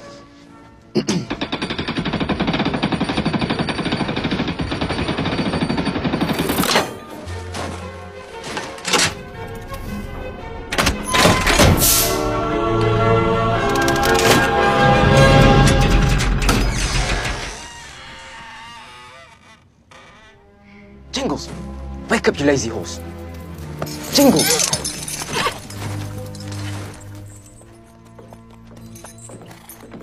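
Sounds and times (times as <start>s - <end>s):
orchestral film music: 0.0s - 1.7s, 6.1s - 17.7s, 20.3s - 30.0s.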